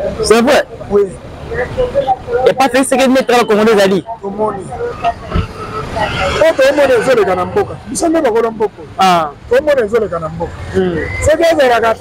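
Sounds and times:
passing vehicles rumble: 0.0s - 12.0s
people's voices: 0.0s - 12.0s.

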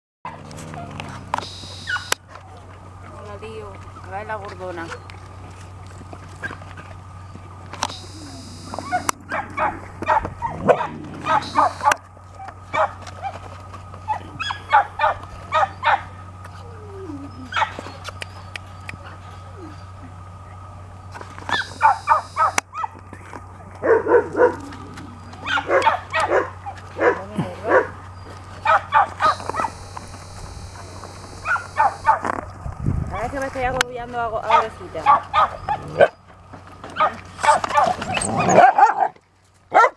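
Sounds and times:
dogs whimpering: 0.3s - 2.1s, 8.0s - 20.6s, 21.5s - 29.8s, 30.4s - 32.2s, 34.5s - 36.3s, 36.9s - 39.1s
dogs barking and yipping: 0.3s - 2.2s, 4.8s - 20.7s, 21.4s - 32.5s, 34.4s - 39.9s.

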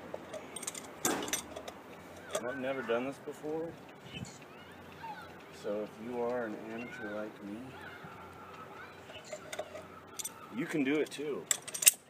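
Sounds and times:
hand tools clicking: 0.1s - 2.6s, 8.5s - 12.0s.

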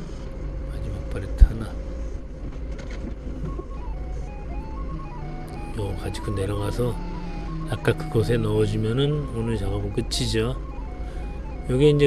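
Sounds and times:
forklift engine running: 0.0s - 12.0s
simple background music melody: 0.0s - 12.0s.

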